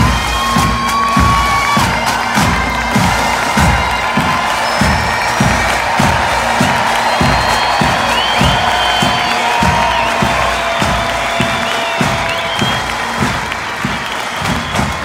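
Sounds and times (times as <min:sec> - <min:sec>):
bagpipes playing: 0:00.0 - 0:14.8
crowd cheering and whooping: 0:00.0 - 0:15.0
steady drum beat: 0:00.0 - 0:15.0.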